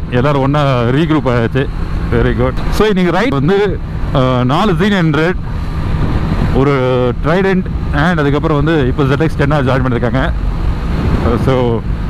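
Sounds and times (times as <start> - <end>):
man talking: 0.0 - 5.4, 6.5 - 10.4, 11.2 - 11.9
road noise: 0.0 - 12.0
wind rush: 3.7 - 12.0.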